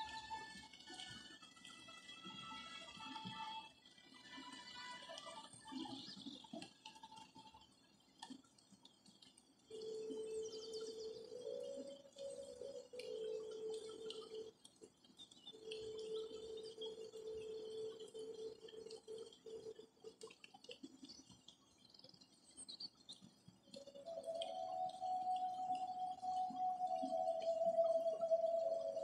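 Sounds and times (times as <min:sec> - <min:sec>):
birds chirping faintly: 0:00.0 - 0:29.0
steady mid-pitched tone: 0:23.8 - 0:29.0.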